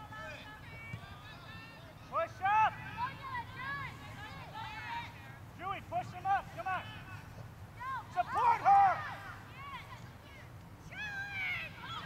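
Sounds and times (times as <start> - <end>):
children shouting and calling: 7.8 - 12.0.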